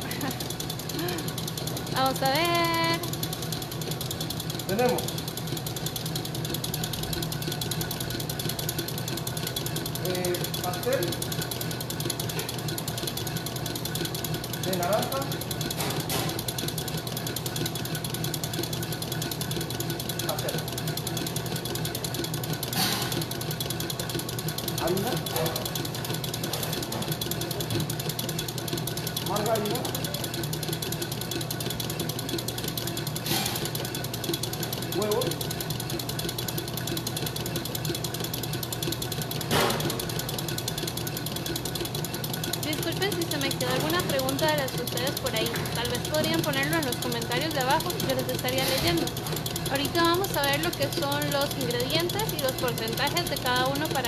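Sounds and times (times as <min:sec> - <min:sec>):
electric mixer motor humming: 0:00.0 - 0:54.0.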